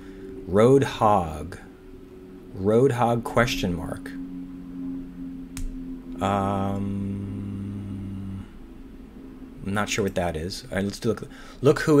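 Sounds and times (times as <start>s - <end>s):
low two-tone hum: 0.0s - 12.0s.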